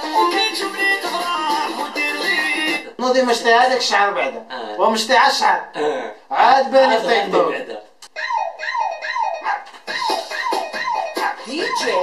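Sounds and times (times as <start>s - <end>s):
high yelping cries: 8.1s - 12.0s.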